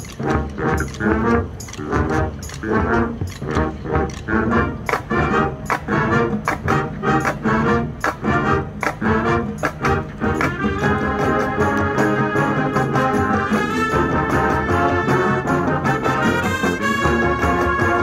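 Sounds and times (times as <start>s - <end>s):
brass chords: 0.0s - 18.0s.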